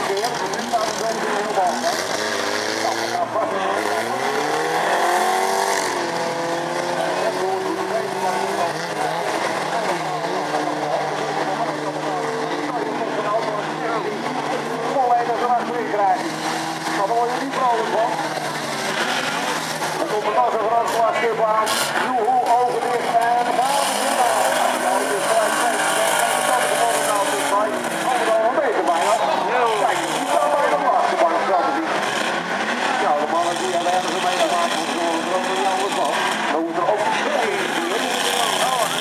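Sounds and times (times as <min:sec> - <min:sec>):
crowd voices: 0:00.0 - 0:39.0
racing car engines revving: 0:00.0 - 0:39.0.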